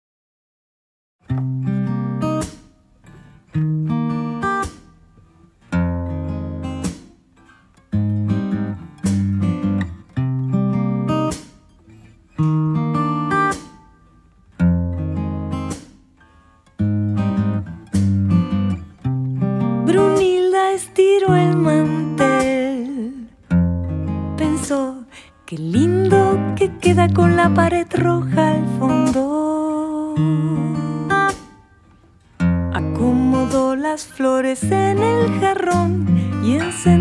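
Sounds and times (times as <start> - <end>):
guitar chords ringing: 1.3 - 37.0.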